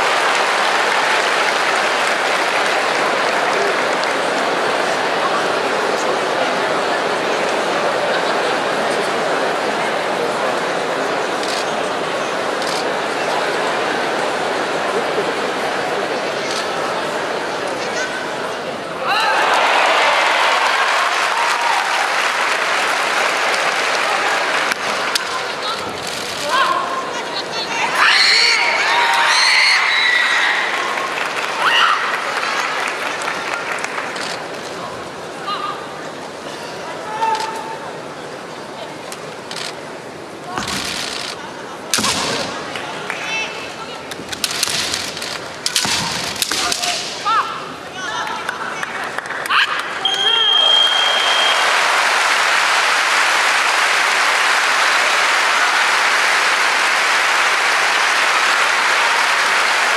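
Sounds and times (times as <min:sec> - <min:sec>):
crowd applauding: 0:00.0 - 0:17.1, 0:19.2 - 0:27.2, 0:28.4 - 0:35.3, 0:42.4 - 0:44.2, 0:48.0 - 0:59.9
bamboo swords striking: 0:41.9 - 0:42.4, 0:44.4 - 0:47.3.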